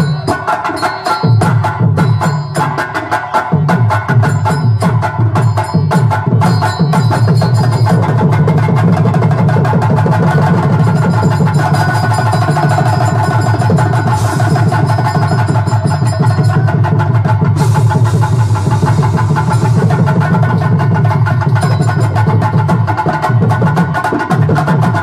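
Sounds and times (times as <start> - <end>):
hand drums beating fast rhythm: 0.0 - 25.0
sustained melody: 10.7 - 16.8.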